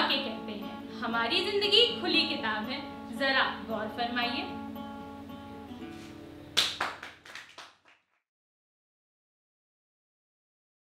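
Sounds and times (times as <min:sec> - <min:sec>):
acoustic guitar notes: 0:00.0 - 0:07.2
hand claps: 0:06.6 - 0:08.2.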